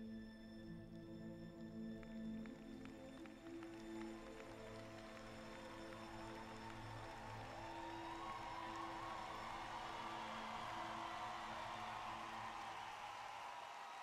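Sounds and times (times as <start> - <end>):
slow orchestral music: 0.0 - 13.6
crowd cheering and applause: 2.5 - 14.0.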